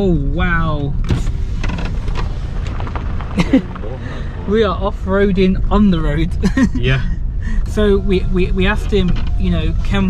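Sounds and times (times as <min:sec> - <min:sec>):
tyres rumbling on rough road: 0:00.0 - 0:10.0
knocks and rattles: 0:00.8 - 0:04.0, 0:08.7 - 0:09.6.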